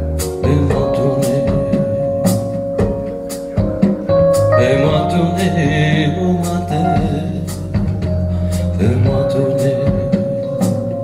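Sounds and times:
rock blues music on loudspeakers: 0.0s - 11.0s.

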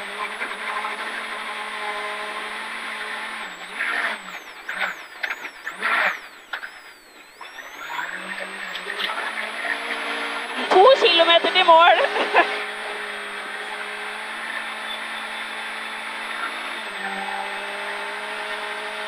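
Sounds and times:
car engine revving from inside cabin: 0.0s - 4.2s, 7.6s - 19.0s
sharp bursts on downshift: 0.0s - 19.0s.

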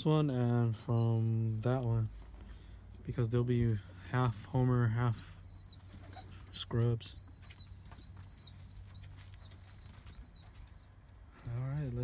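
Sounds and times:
low steady hum: 0.0s - 12.0s
high-pitched whistled bird chirps: 5.2s - 11.8s.

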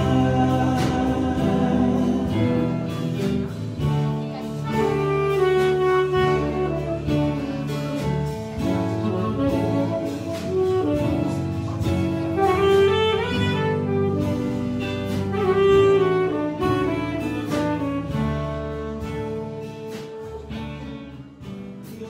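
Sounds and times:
live band playing: 0.0s - 22.0s
saxophone melody: 0.0s - 22.0s
steady drum beat: 0.0s - 22.0s.

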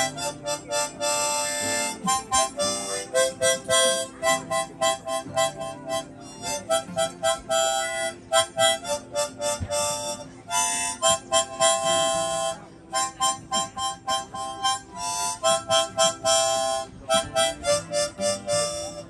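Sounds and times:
harmonica playing lively tune: 0.0s - 19.0s.

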